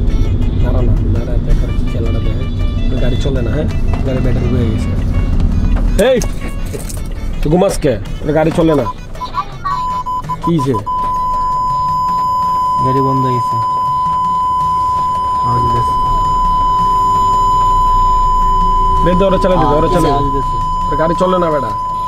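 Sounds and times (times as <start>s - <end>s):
censor bleep tone: 9.8s - 22.0s.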